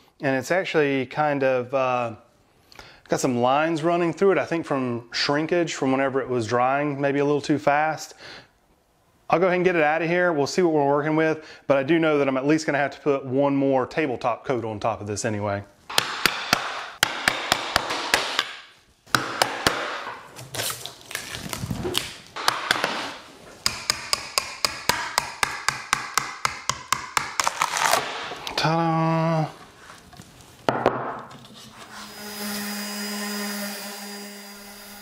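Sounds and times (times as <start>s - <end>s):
orbital sander running: 31.8s - 35.0s.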